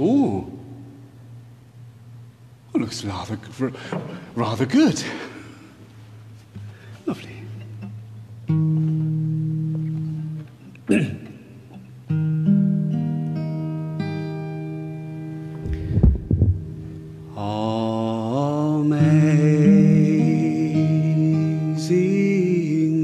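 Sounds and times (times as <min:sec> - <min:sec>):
acoustic guitar chords strummed: 0:06.6 - 0:23.0
knocks of guitar being handled: 0:15.6 - 0:16.7.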